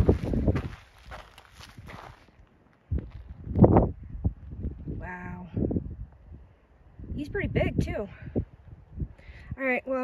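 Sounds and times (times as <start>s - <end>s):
footsteps scuffing on gravel: 0.0s - 3.4s.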